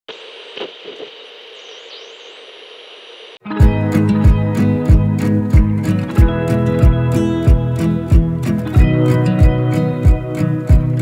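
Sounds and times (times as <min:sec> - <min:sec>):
television static hiss: 0:00.1 - 0:03.4
kick drum beat with guitar: 0:03.5 - 0:11.0.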